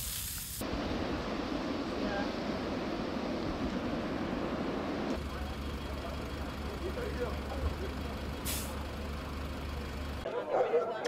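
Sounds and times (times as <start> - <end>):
wildfire rushing hiss: 0.0 - 10.2
fire engines idling hum: 0.6 - 10.3.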